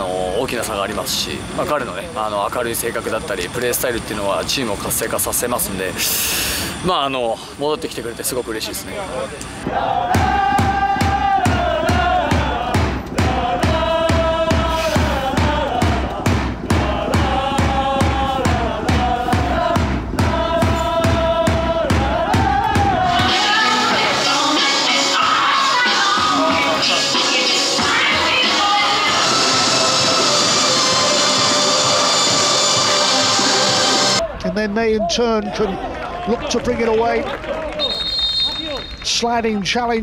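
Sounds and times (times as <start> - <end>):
steady drumbeat: 9.6 - 34.2
supporters singing a chant: 9.6 - 34.2.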